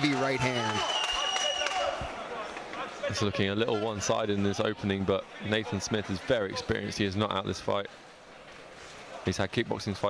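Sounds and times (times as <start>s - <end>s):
crowd murmur and calls: 0.0s - 10.0s.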